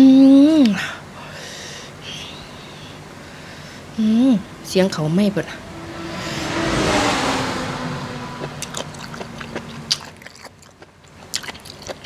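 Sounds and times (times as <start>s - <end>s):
vehicle passing: 3.8s - 10.7s
person chewing food: 8.4s - 12.0s.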